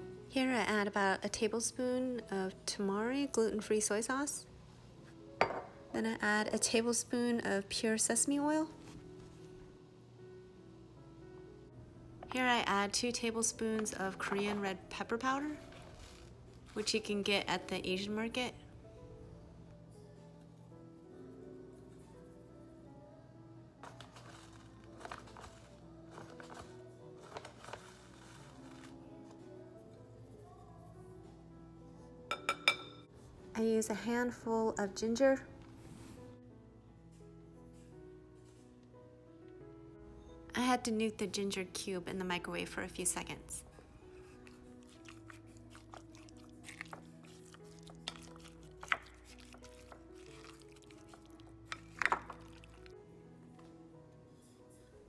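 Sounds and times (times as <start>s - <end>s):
quiet background music: 0.0s - 55.0s
wooden spoon tapping glass bowl: 5.4s - 5.7s
spoon clinking on glass: 32.3s - 33.0s.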